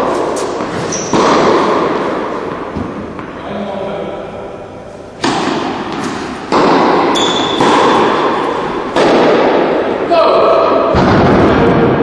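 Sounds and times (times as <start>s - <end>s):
tennis ball struck by racket: 0.0s - 3.3s, 5.2s - 9.8s.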